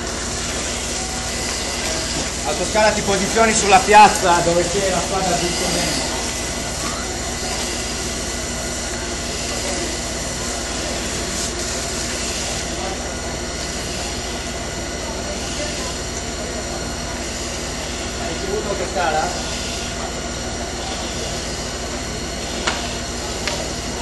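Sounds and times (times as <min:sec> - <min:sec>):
machine drone with hiss: 0:00.0 - 0:24.0.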